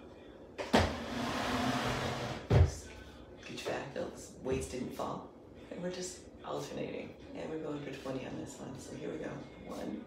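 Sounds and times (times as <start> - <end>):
chair legs scraping floorboards: 0.8 - 2.7
chair knocking on wooden floor: 2.2 - 2.8.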